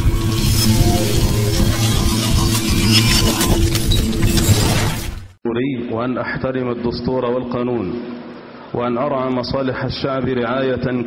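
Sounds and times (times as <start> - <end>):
news sting music with crashing hits: 0.0 - 5.2
man speaking into microphone: 5.4 - 8.0, 8.7 - 11.0.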